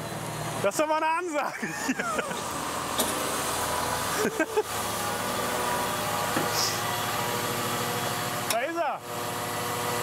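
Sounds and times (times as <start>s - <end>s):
diesel engine idling: 0.0s - 9.1s.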